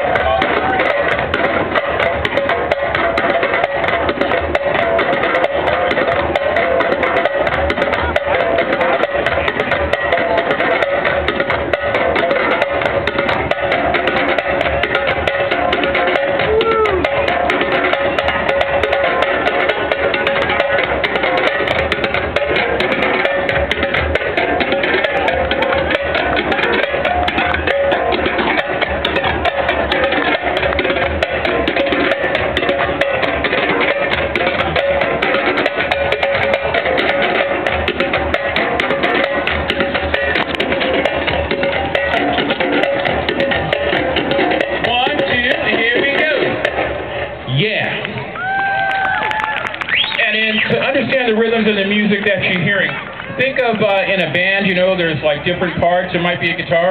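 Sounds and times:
hand drums playing fast rhythm: 0.0 - 56.9.

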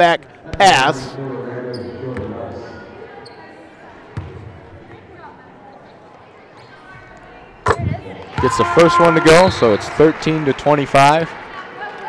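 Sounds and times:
murmur of voices: 0.0 - 12.0
basketball bouncing on court: 4.1 - 5.0.

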